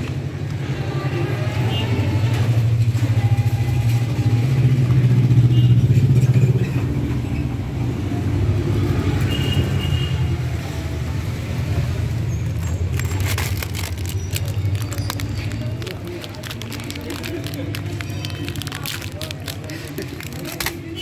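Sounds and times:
vehicle engine rumbling: 0.1s - 21.0s.

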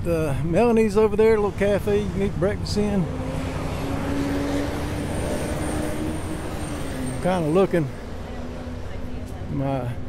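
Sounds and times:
street traffic noise: 0.0s - 10.0s
vehicle engine humming: 0.0s - 10.0s.

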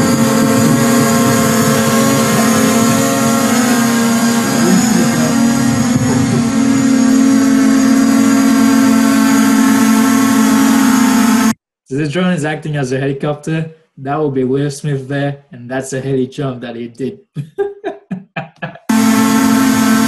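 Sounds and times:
drone propellers buzzing: 0.0s - 11.6s, 18.8s - 20.0s.

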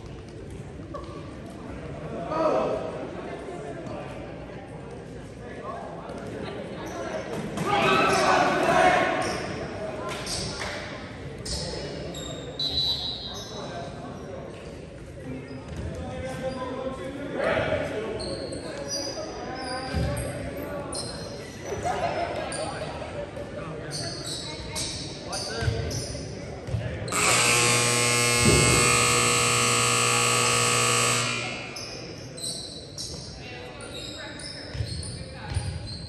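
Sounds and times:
voices echoing: 0.9s - 36.0s
scoreboard horn buzzing: 27.1s - 32.1s.

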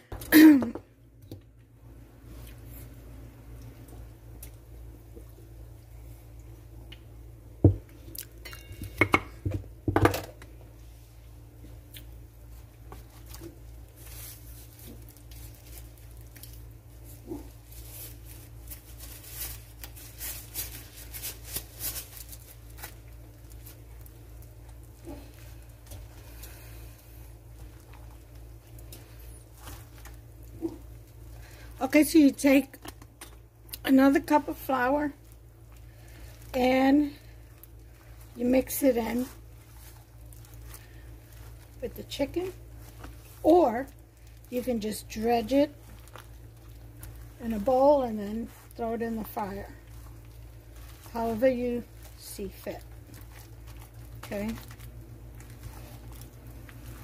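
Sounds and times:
steady low hum: 0.0s - 57.0s
chicken squishing in flour: 10.8s - 57.0s.

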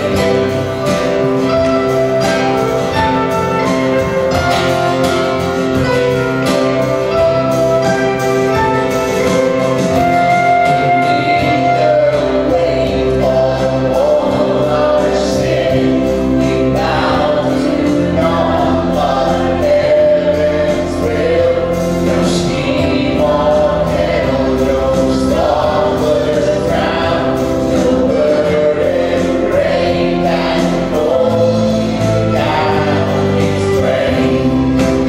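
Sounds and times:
acoustic guitar: 0.0s - 35.0s
bass guitar: 0.0s - 35.0s
organ: 0.0s - 35.0s
piano: 0.0s - 35.0s
man and women singing: 10.6s - 35.0s.

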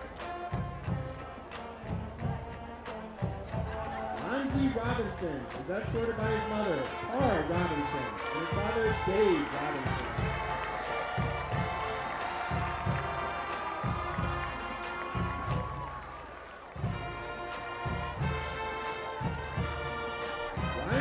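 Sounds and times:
steady low drum beat: 0.0s - 16.2s, 16.8s - 21.0s
marching band playing: 0.0s - 21.0s
sustained brass chords: 16.9s - 21.0s.

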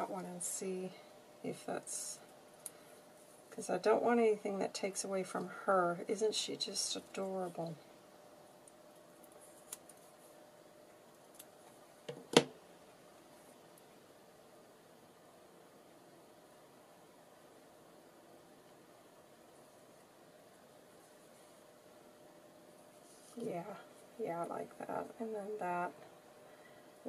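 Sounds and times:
faint steady hum: 0.0s - 27.0s.

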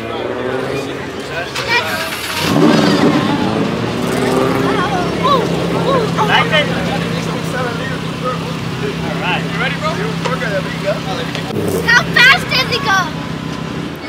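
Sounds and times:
children's voices: 0.0s - 7.6s, 11.4s - 14.0s
sports car engine revving and idling: 0.0s - 14.0s.

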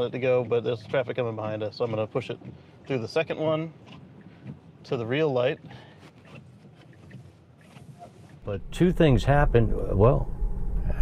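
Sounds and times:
car cabin low hum: 8.4s - 11.0s.

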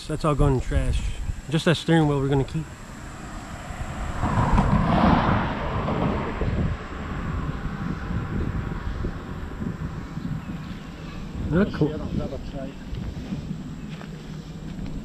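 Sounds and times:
wind rumbling on microphone: 0.0s - 15.0s
vehicle passing by: 2.1s - 11.5s.

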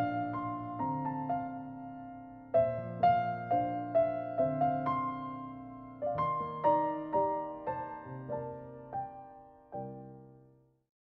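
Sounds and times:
soft piano music: 0.0s - 10.8s.

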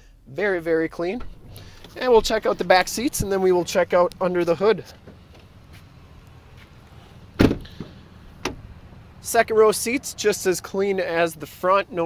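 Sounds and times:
truck door thudding shut: 7.4s - 8.7s.

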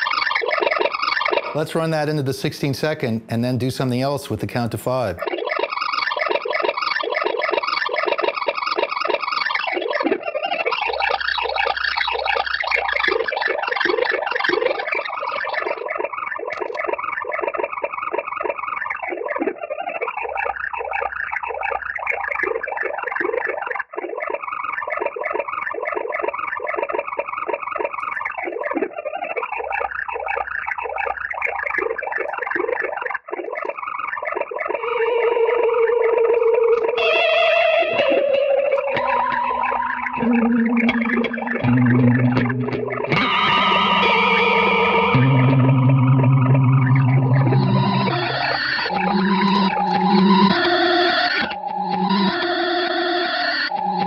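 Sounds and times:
electric guitar through effects: 34.7s - 54.0s.

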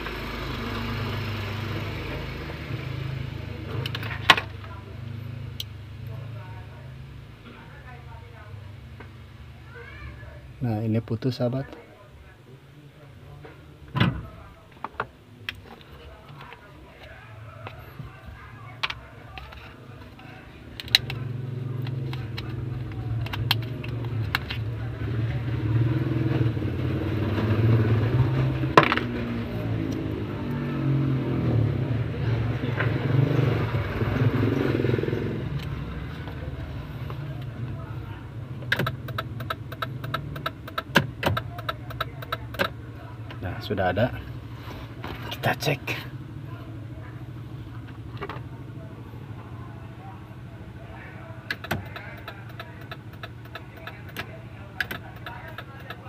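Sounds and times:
low vehicle rumble: 15.2s - 56.0s.

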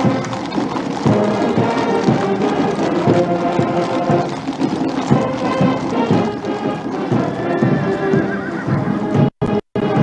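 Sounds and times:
horse hooves clip-clopping on road: 0.0s - 10.0s
military band music: 0.0s - 10.0s.

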